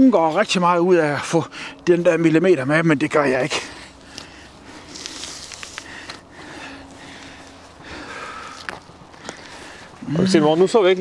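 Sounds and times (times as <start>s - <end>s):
hide tearing and rustling: 4.1s - 6.2s.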